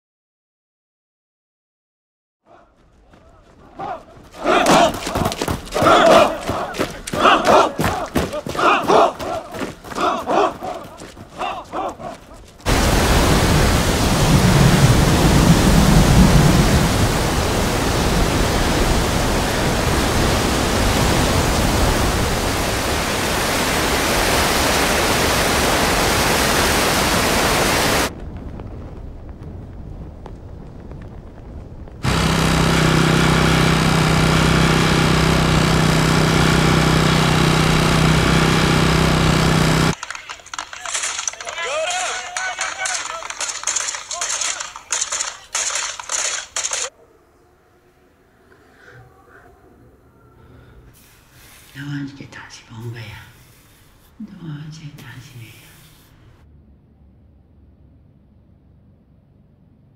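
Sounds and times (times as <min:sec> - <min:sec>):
strong wind through trees: 0:12.7 - 0:32.1
low pitched hum with drone: 0:32.0 - 0:40.0, 0:56.2 - 0:59.9.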